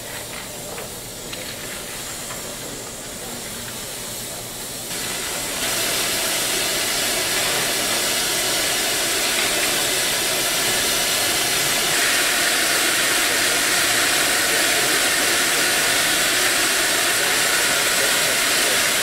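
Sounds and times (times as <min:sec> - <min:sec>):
steam hissing from locomotive: 0:00.0 - 0:19.0.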